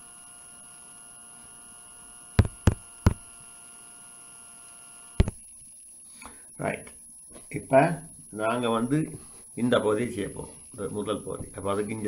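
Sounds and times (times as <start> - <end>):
electrical mains hum: 0.0 - 12.0
faint whine tones: 0.0 - 12.0.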